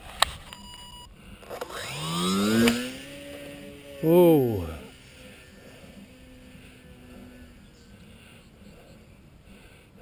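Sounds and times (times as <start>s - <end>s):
electric motor whine: 1.4s - 9.4s.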